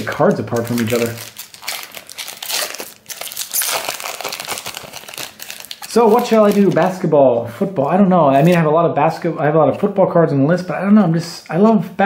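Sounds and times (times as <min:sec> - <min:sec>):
man speaking: 0:00.0 - 0:01.2, 0:05.9 - 0:12.0
foil wrapper crinkling: 0:00.0 - 0:07.0.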